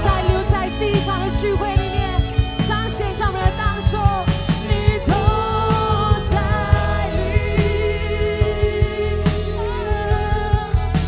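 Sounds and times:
bass: 0:00.0 - 0:11.0
drum beats: 0:00.0 - 0:11.0.

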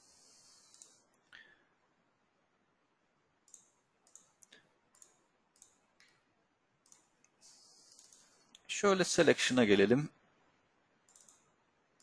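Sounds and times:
computer mouse clicks: 0:00.1 - 0:01.2, 0:03.4 - 0:06.2, 0:06.8 - 0:08.7, 0:11.0 - 0:12.0.

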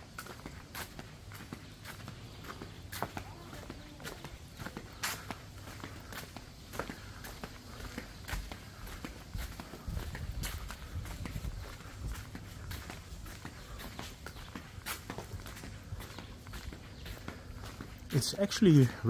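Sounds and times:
footsteps on concrete: 0:00.0 - 0:19.0.

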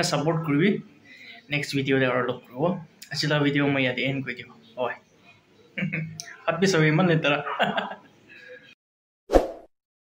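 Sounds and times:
rising pop sound effect: 0:09.3 - 0:09.7.

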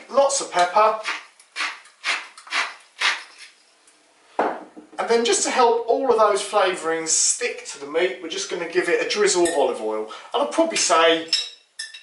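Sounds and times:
pepper mill grinding: 0:01.0 - 0:03.5.

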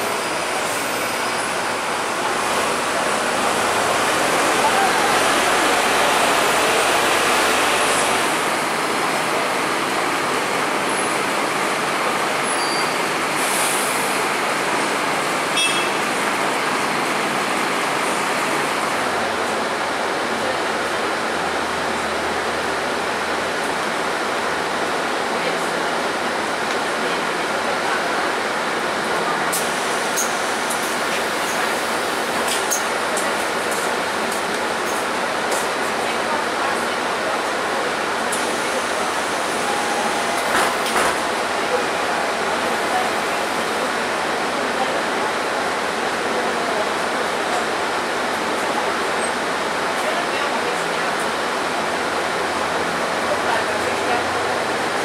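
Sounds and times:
indistinct voices: 0:00.0 - 0:12.9
bus engine: 0:00.0 - 0:55.0
road traffic: 0:00.0 - 0:55.0.

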